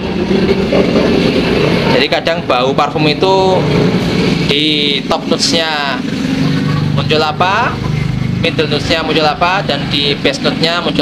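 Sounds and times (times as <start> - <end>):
road traffic engine noise: 0.0 - 11.0.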